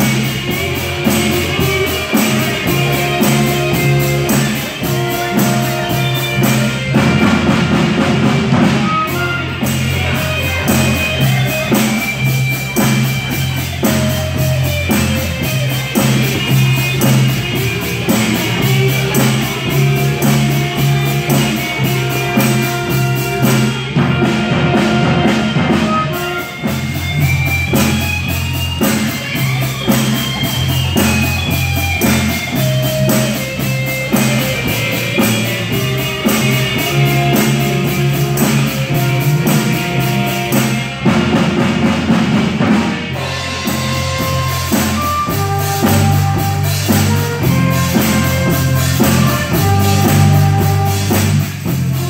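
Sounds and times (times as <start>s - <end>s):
bass notes: 0.0s - 52.0s
busy drumming: 0.0s - 52.0s
clarinet: 0.0s - 52.0s
electric guitar: 0.0s - 52.0s
saxophones: 0.0s - 52.0s.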